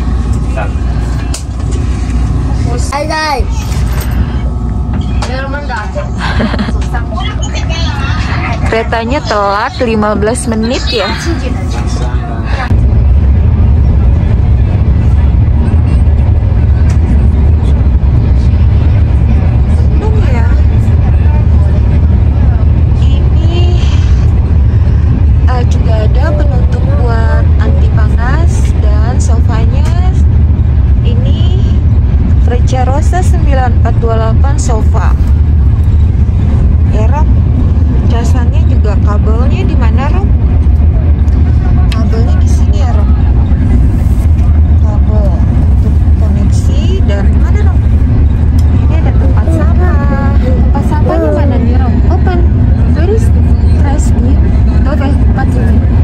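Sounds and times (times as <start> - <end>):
deep rumble of train at speed: 0.0 - 56.0
people's voices: 0.0 - 56.0.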